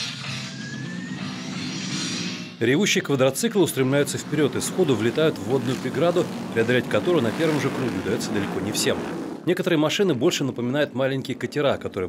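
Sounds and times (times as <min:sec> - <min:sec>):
background music: 0:00.0 - 0:05.7
quad bike engines revving: 0:03.0 - 0:09.5.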